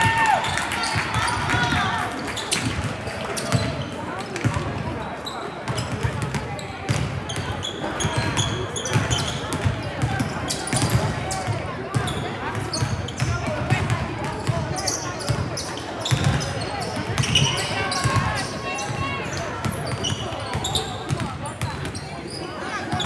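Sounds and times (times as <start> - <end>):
spectators chattering: 0.0 - 23.0
basketballs bouncing on gym floor: 5.7 - 15.5, 16.1 - 22.1
shoe squeaks: 14.8 - 21.2, 21.9 - 23.0.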